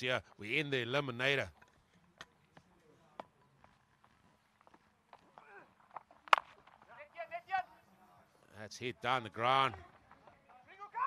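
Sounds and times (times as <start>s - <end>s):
cricket bat striking ball: 6.2s - 6.8s.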